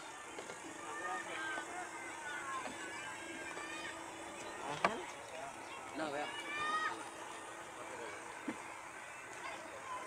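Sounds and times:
steady outdoor hum: 0:00.0 - 0:10.0.

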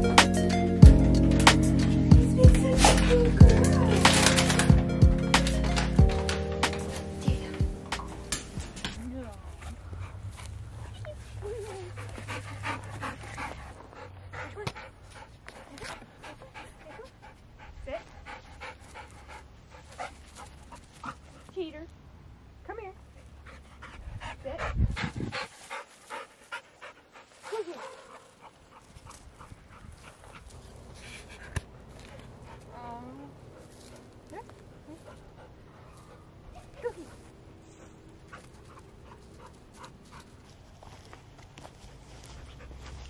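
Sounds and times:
dog panting: 0:00.9 - 0:21.6, 0:23.1 - 0:43.0.

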